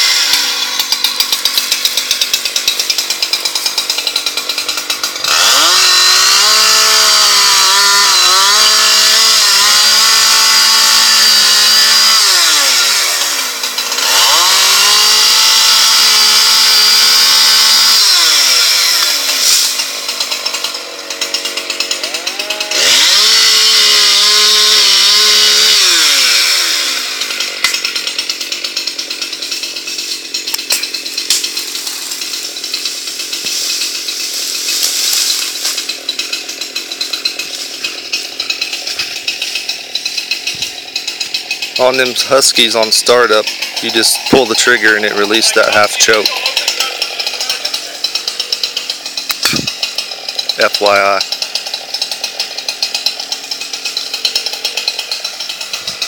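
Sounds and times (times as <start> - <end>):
chainsaw cutting wood: 0.0 - 56.0
chainsaw idling unevenly: 0.0 - 56.0.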